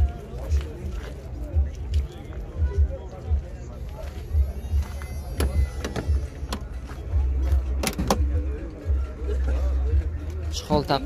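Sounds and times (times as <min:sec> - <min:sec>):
car door latch clicks: 0:07.8 - 0:08.3.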